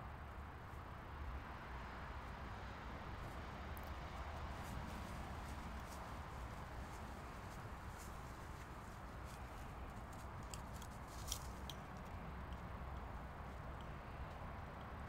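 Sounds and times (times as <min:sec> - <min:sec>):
steady low background noise: 0:00.0 - 0:15.0.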